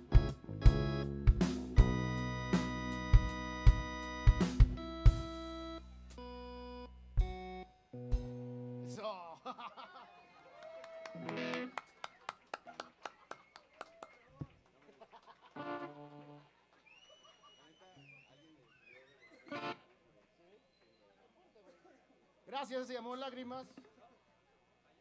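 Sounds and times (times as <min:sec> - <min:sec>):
electric guitar notes ringing: 0:00.0 - 0:09.0, 0:11.2 - 0:11.8
audience handclaps: 0:10.4 - 0:17.7.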